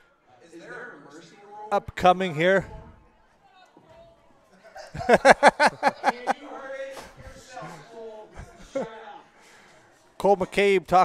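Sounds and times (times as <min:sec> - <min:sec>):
muffled talk and chuckling: 0:02.5 - 0:10.8
man laughing heartily: 0:04.8 - 0:06.4.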